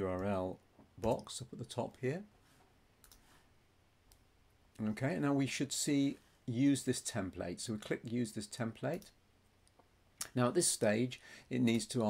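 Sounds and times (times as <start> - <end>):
man speaking: 0.0 - 2.3, 4.8 - 9.2, 10.2 - 12.0
room hiss: 0.0 - 12.0.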